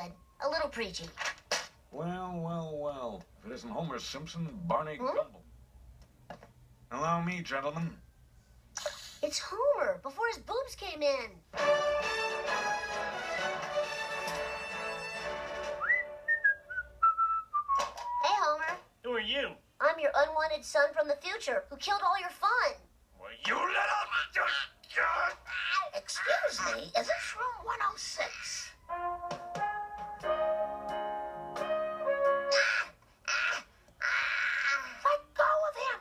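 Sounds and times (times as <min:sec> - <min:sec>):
descending whistle: 0:15.8 - 0:18.3.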